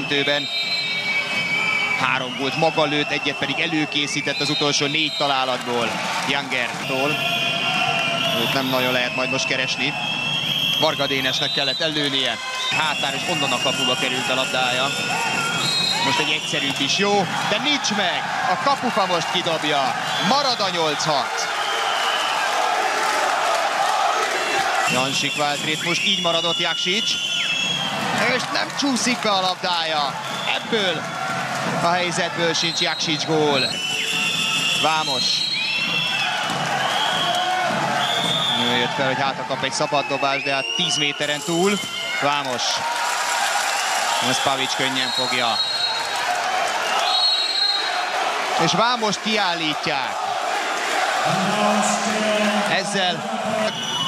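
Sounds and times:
referee's whistle blast: 0.0s - 5.6s, 6.7s - 17.1s, 19.9s - 20.8s, 24.9s - 28.4s, 30.0s - 30.9s, 32.5s - 39.1s, 39.9s - 42.4s, 44.2s - 46.2s, 46.8s - 48.1s, 53.6s - 54.0s
arena crowd din: 0.0s - 54.0s.

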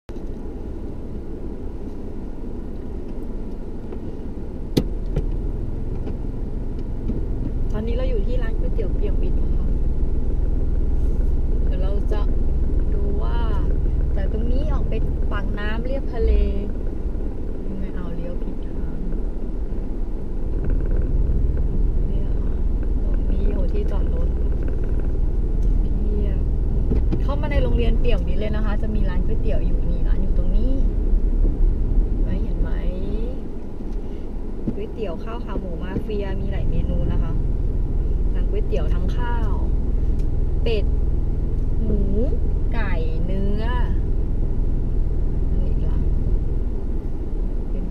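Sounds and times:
engine and tyres rumble: 0.0s - 47.9s.

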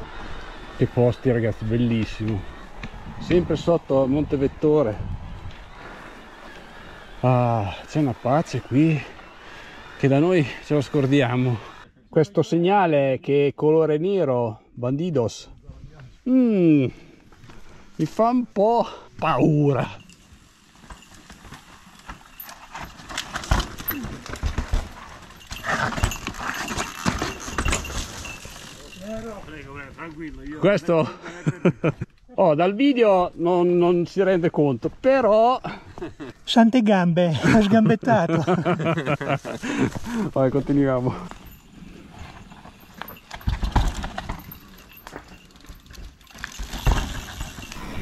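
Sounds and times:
bike clicks and rattles on rock: 20.0s - 30.6s, 41.1s - 48.0s
wheels thumping over ledges: 42.4s - 48.0s.

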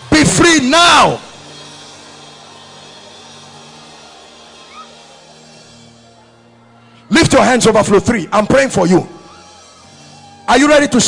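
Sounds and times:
room noise: 0.0s - 6.8s
short high-pitched rising cry: 0.4s - 6.2s, 9.0s - 11.0s.

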